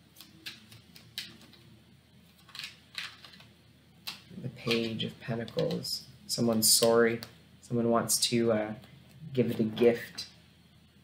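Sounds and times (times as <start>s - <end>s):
cards being shuffled: 0.1s - 7.3s.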